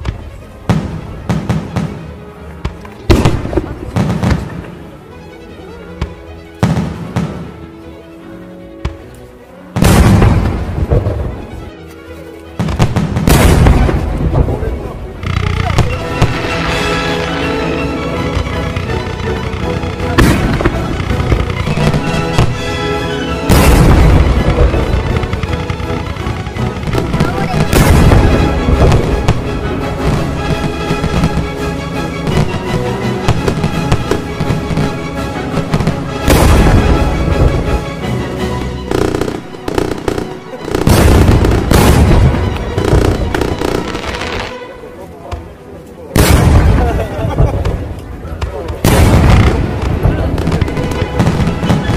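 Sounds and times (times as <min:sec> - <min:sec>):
fireworks bursting and crackling: 0:00.0 - 0:05.0, 0:06.0 - 0:07.7, 0:08.8 - 0:51.9
background music: 0:00.0 - 0:51.9.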